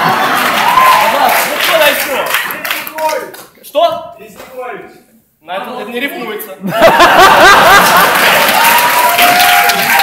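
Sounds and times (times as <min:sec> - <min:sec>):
audience clapping: 0:00.0 - 0:03.6, 0:07.2 - 0:10.0.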